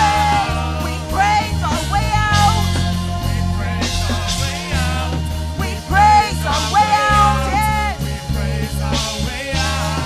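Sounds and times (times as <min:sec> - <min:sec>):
drums: 0:00.0 - 0:10.0
electric bass guitar: 0:00.0 - 0:10.0
keyboard: 0:00.0 - 0:10.0
voices singing: 0:00.0 - 0:10.0.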